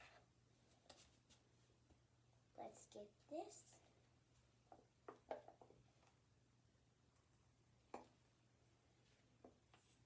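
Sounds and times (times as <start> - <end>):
faint handling sounds: 0.0 - 2.0.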